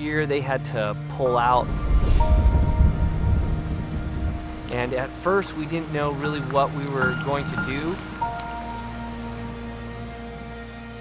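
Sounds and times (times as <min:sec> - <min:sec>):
soft sustained music chord: 0:00.0 - 0:11.0
rain falling into a puddle: 0:02.4 - 0:11.0.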